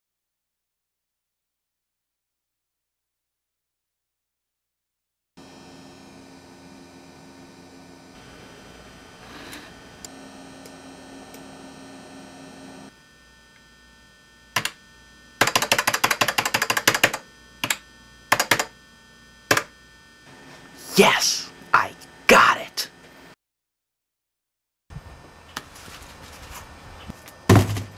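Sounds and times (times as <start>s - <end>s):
electrical hum: 5.4s - 23.4s, 24.9s - 27.9s.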